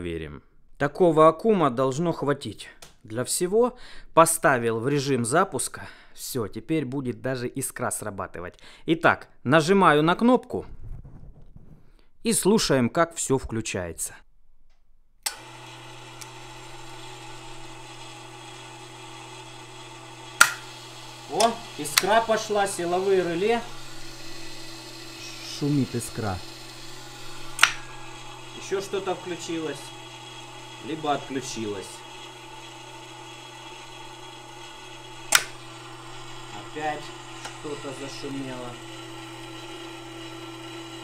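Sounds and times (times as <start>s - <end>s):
small electric motor humming: 15.3s - 41.0s
mechanism switch click: 27.5s - 27.9s, 35.3s - 35.6s.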